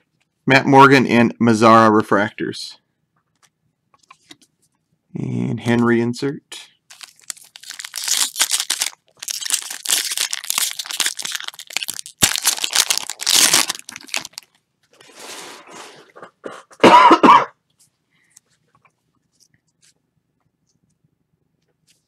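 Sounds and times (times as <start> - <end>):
foil wrapper tearing and crinkling: 6.9 - 14.6
person coughing: 16.4 - 17.6.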